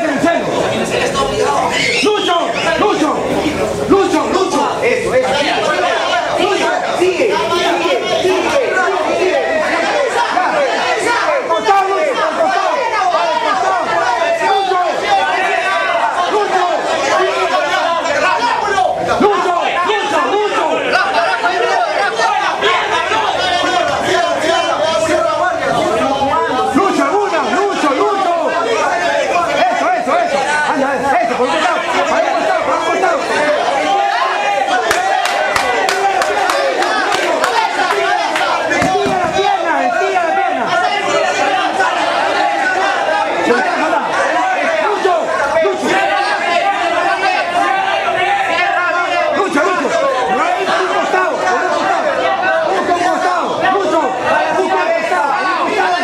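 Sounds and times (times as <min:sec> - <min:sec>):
people chattering: 0:00.0 - 0:56.0.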